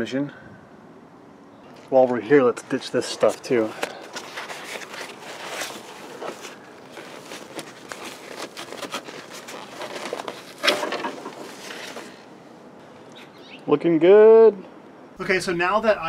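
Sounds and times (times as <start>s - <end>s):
gloved hands rummaging material: 3.0s - 12.3s.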